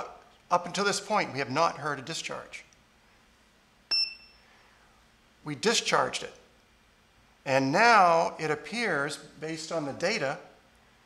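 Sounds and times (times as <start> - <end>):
short high-pitched electronic ding: 3.9 - 4.4.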